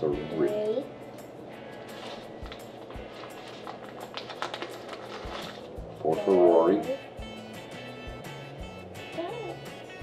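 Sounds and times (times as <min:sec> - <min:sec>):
soft background music: 0:00.0 - 0:10.0
plastic bag crinkling: 0:01.8 - 0:06.0.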